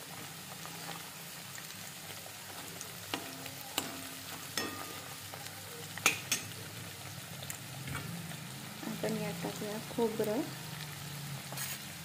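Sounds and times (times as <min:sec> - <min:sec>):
spices sizzling in hot oil: 0:00.0 - 0:12.0
spoon stirring in a pan: 0:00.7 - 0:06.7
steel spoon clinking against pan: 0:03.1 - 0:05.2, 0:06.0 - 0:06.6.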